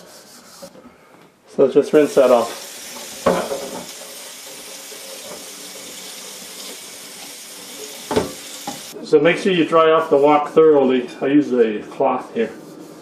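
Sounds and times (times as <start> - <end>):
tap water running onto wok: 2.8 - 9.0.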